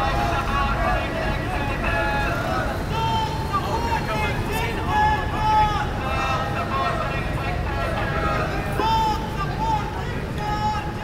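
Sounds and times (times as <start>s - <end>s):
people talking in low voices: 0.0s - 11.0s.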